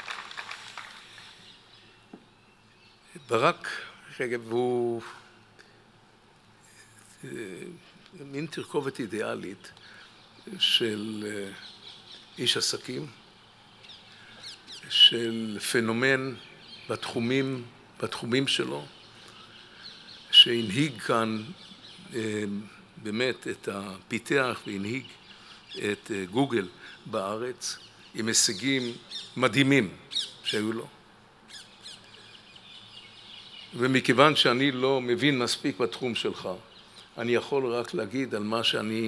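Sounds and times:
small birds chirping: 0.9 - 5.8, 6.6 - 39.0
man speaking: 3.1 - 5.2, 6.7 - 9.7, 10.5 - 11.6, 12.4 - 13.2, 14.8 - 18.9, 20.3 - 25.2, 25.8 - 30.9, 33.8 - 36.6, 37.2 - 39.0.

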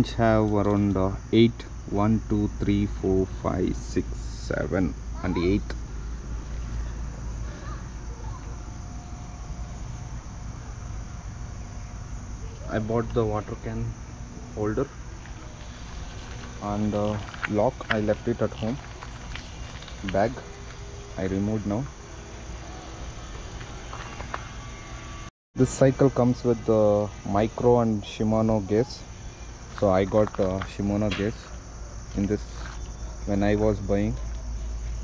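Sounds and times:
man speaking: 0.0 - 5.8, 12.7 - 15.0, 16.6 - 18.8, 20.0 - 20.4, 21.2 - 21.9, 25.6 - 29.1, 29.8 - 31.5, 33.2 - 34.2
continuous high-pitched hiss: 0.0 - 35.0
outdoor background noise: 0.0 - 35.0
low rumble: 4.0 - 25.3.

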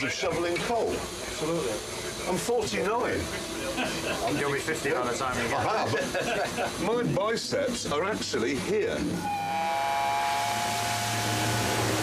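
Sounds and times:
steam locomotive venting steam: 0.0 - 12.0.

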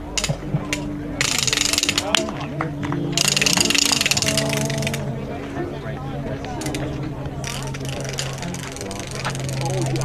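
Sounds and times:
rapid clicking rattle: 0.1 - 2.3, 3.2 - 5.1, 6.6 - 10.0.

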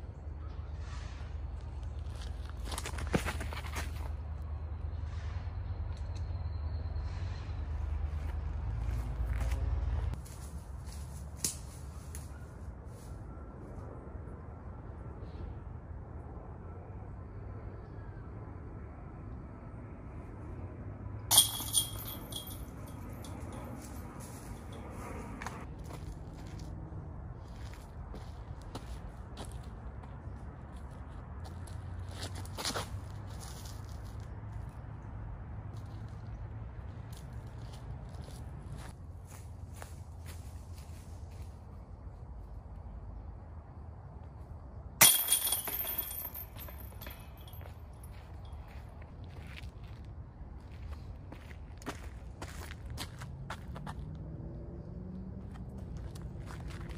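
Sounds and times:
jangling chain rattle: 21.3 - 25.0, 45.0 - 48.1.

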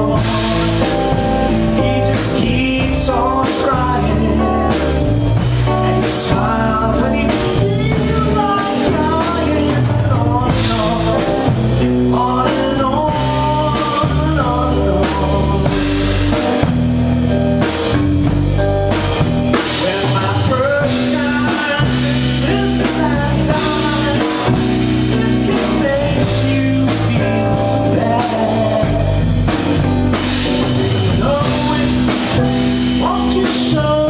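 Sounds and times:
live band playing soft rock: 0.0 - 34.0.

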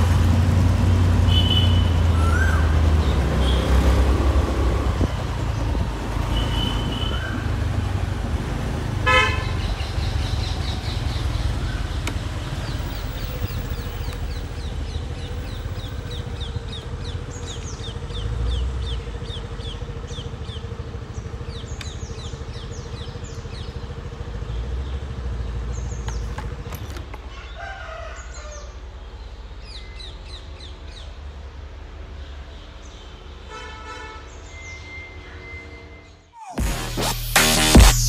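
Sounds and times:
birds chirping: 1.3 - 36.6.

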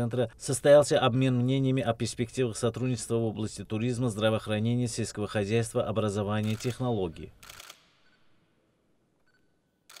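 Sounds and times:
camera shutter clicks: 7.4 - 7.9.

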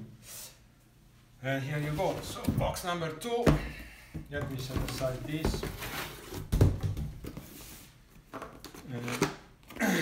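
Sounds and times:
cardboard boxes knocking and scraping: 3.4 - 7.6.

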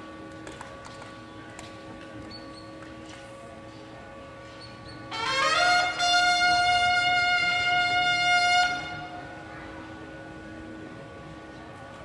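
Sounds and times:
bugle long note: 5.1 - 9.5.

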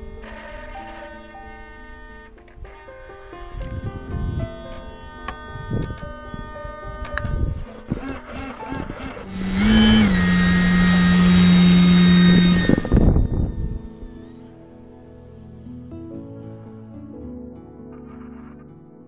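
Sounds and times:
electric motor and propeller humming: 0.0 - 16.9
background music: 0.0 - 19.0.

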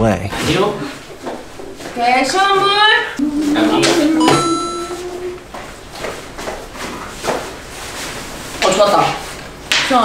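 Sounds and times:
high ringing tone: 3.2 - 5.4
man calling out sing-song: 3.2 - 5.4.

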